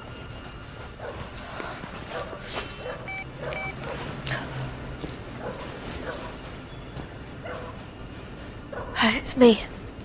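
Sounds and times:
phone keypad beeps: 3.1s - 3.8s.

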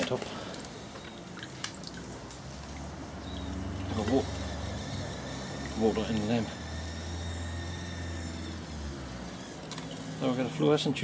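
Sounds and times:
water splashing and dripping: 0.0s - 6.3s.

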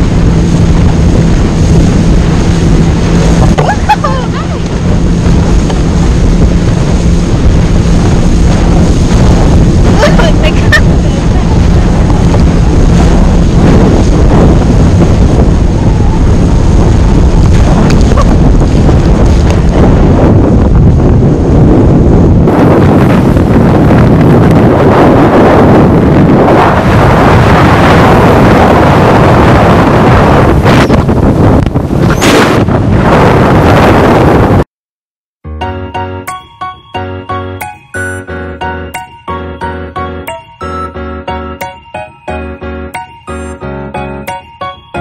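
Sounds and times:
water rushing and spraying: 0.0s - 20.2s
wind buffeting microphone: 0.0s - 34.6s.

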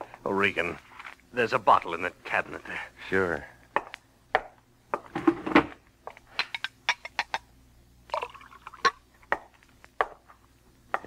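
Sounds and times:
liquid pouring: 8.1s - 9.0s.

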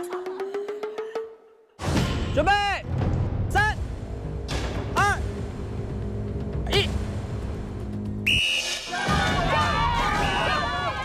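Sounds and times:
dramatic background music: 0.0s - 11.0s
short whistle blast: 8.2s - 8.9s.

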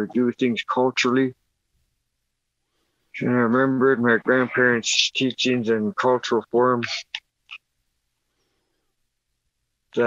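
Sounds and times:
man speaking: 0.0s - 1.4s, 3.2s - 7.6s.

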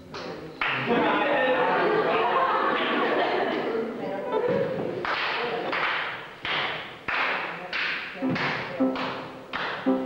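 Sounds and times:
pitched tones: 8.2s - 10.0s.

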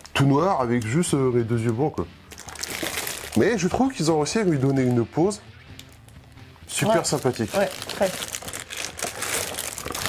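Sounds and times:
plastic bag crinkling: 2.3s - 5.0s, 5.7s - 10.0s.

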